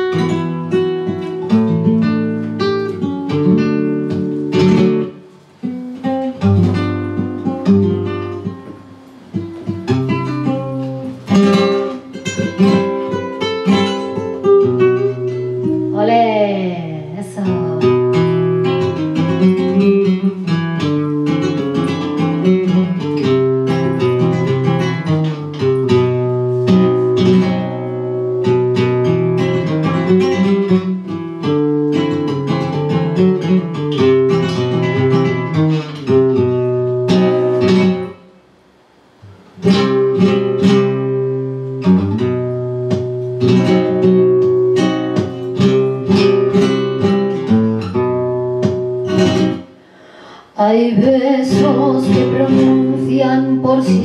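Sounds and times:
flamenco guitar playing: 0.0s - 54.0s.

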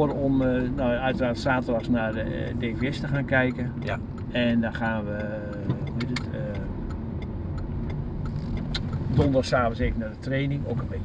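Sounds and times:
engine and tyres rumbling: 0.0s - 11.0s
faint clicks: 0.4s - 9.5s.

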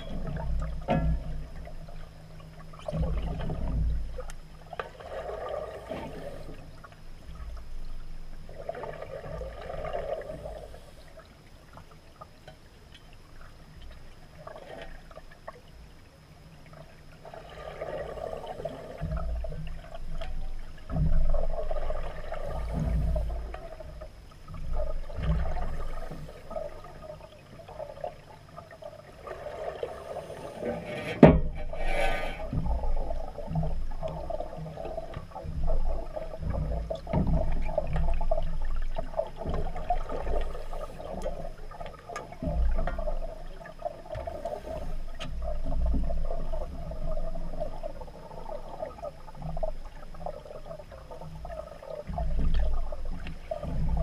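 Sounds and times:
regulator bubbles gurgling underwater: 0.0s - 54.0s.

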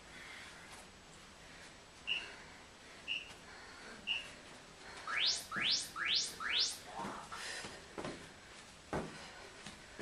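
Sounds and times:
quick rising chirps: 5.1s - 6.9s
timer beep: 5.1s - 6.9s
feet thudding on floor: 8.9s - 9.3s.

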